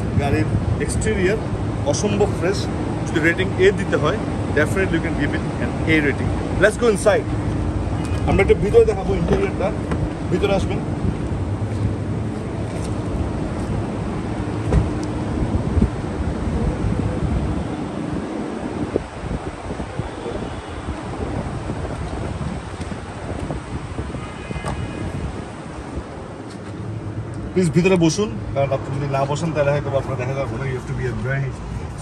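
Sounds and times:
wind rumbling on microphone: 0:00.0 - 0:27.6
outdoor background noise: 0:00.0 - 0:32.0.

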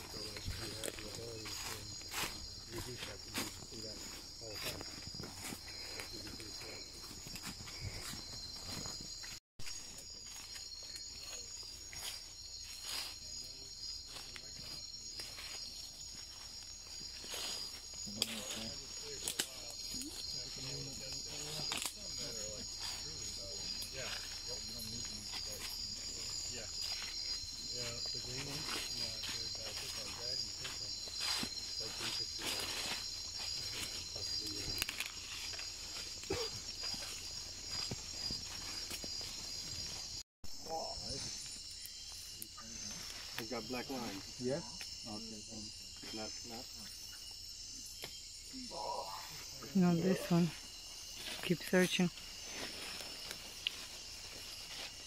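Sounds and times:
footsteps: 0:00.0 - 0:18.7, 0:22.6 - 0:40.2
leaves brushing: 0:00.0 - 0:40.2, 0:50.3 - 0:55.0
night insects buzzing chorus: 0:00.0 - 0:55.0
footsteps crunching through leaf litter: 0:52.2 - 0:55.0.

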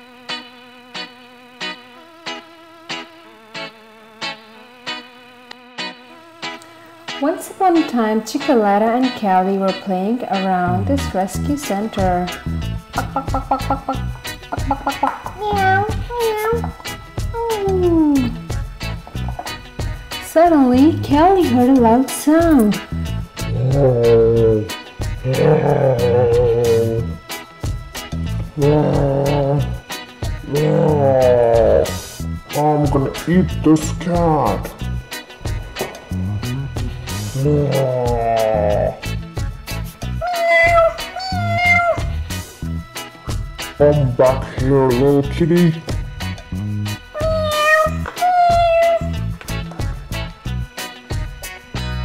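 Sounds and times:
background music with steady beat: 0:00.0 - 0:52.0
toy cat meowing: 0:15.4 - 0:16.7, 0:40.2 - 0:42.2, 0:47.2 - 0:49.2
loud roar: 0:23.5 - 0:27.1, 0:30.5 - 0:32.0.

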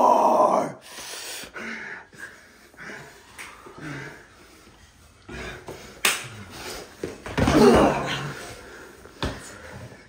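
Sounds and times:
low grunts: 0:07.4 - 0:08.5.

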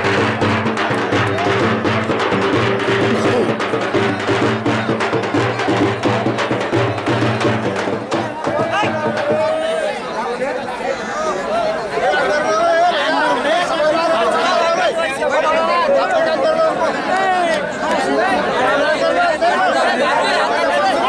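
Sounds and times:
fast drumming: 0:00.0 - 0:09.8
crowd chatter: 0:00.0 - 0:21.0
voices calling out: 0:00.0 - 0:21.0.

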